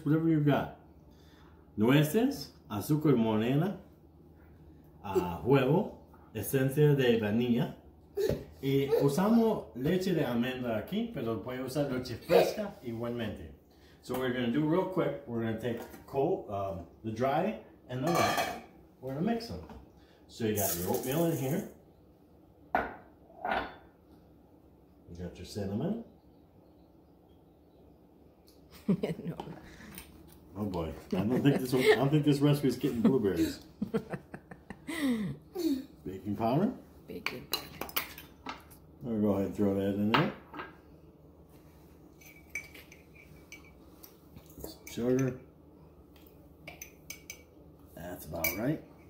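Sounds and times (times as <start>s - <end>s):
light clicks and clinks of glass jar: 42.2s - 45.4s.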